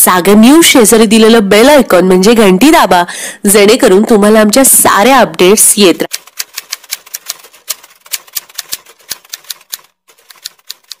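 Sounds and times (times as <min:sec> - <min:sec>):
typewriter key clicks: 0:06.1 - 0:11.0.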